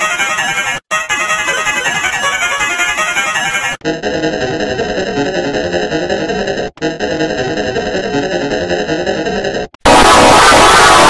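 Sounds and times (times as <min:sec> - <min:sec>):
distorted synthesizer jingle: 0:03.4 - 0:11.0.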